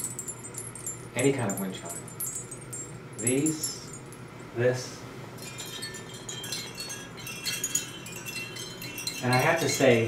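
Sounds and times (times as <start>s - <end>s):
wind chimes tinkling: 0.0s - 4.5s, 5.4s - 10.0s.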